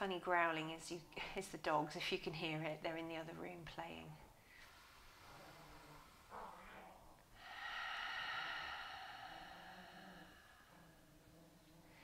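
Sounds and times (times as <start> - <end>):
woman breathing slowly: 4.3 - 12.0.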